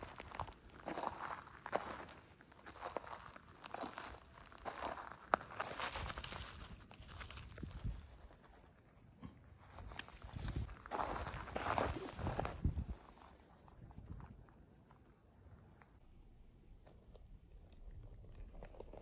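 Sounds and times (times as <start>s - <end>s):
footsteps crunching on gravel: 0.0s - 8.6s, 9.7s - 14.3s
gravel scuffing by hand: 0.0s - 8.7s, 9.6s - 14.3s.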